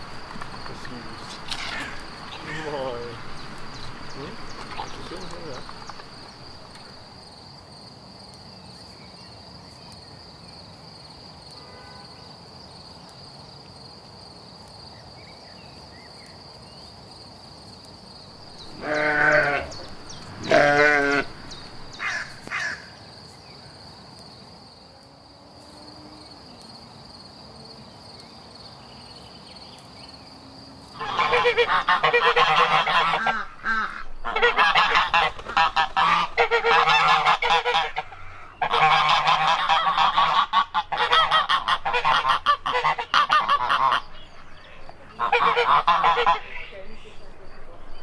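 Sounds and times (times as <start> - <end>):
high insect trill: 0.0 - 48.0
lambs bleating: 18.6 - 21.4.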